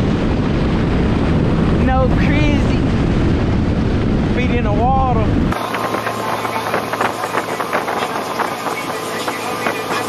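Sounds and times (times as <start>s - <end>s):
churning water: 0.0s - 10.0s
wind on microphone: 0.0s - 10.0s.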